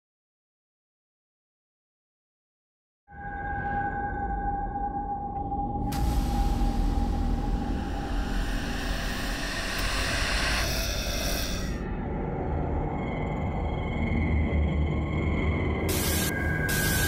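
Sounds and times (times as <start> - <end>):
low rumbling drone: 3.2 - 17.0
radio high whine: 15.9 - 17.0
radio static hiss: 15.9 - 17.0.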